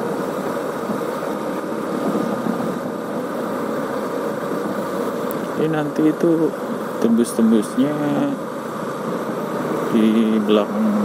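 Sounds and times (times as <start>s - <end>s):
wind noise: 0.0s - 5.6s.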